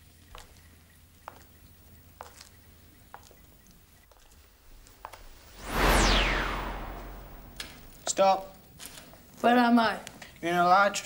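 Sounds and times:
downward sweeping whoosh: 5.3s - 8.0s
low rumble: 5.4s - 8.0s.

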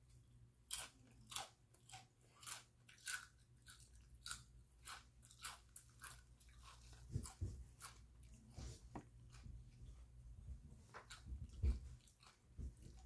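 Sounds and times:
person chewing crunchy chips: 0.6s - 8.6s, 11.0s - 13.0s.

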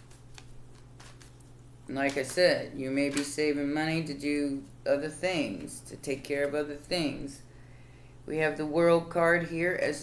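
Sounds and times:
cards being shuffled: 0.0s - 2.4s.

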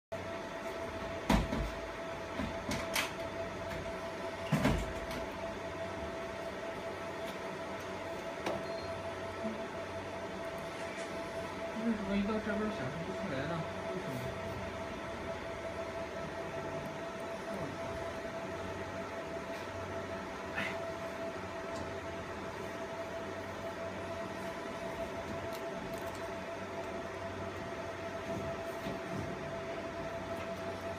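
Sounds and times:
laser marking machine humming: 0.2s - 30.9s.

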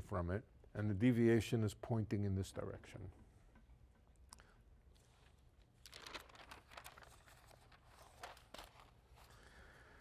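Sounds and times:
quiet room hum: 0.0s - 10.0s.

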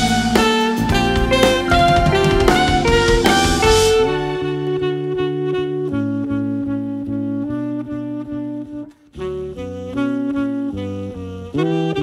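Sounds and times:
live jazz band: 0.0s - 12.0s
saxophone long held notes: 0.0s - 12.0s.

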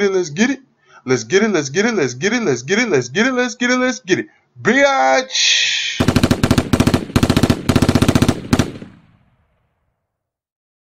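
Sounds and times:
machine-gun bursts: 6.0s - 9.1s.

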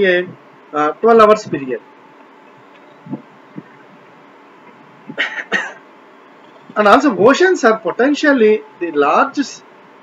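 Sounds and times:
low room hiss: 0.0s - 10.0s
man clearing his throat: 5.2s - 5.8s.

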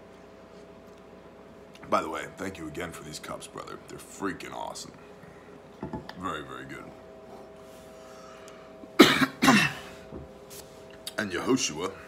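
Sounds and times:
man coughing: 9.0s - 10.0s.

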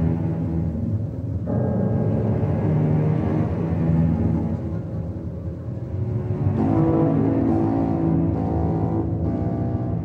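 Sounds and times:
film score sustained chords: 0.0s - 10.0s.

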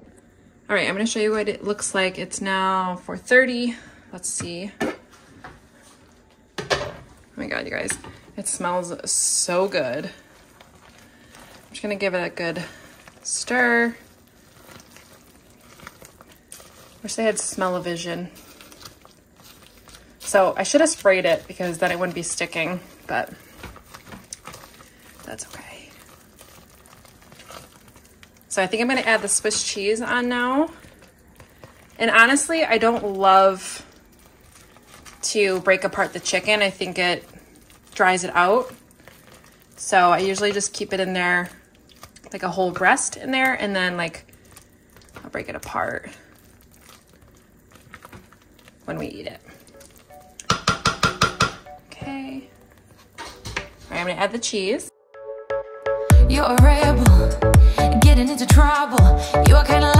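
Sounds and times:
spoon stirring thick food: 7.7s - 54.2s.

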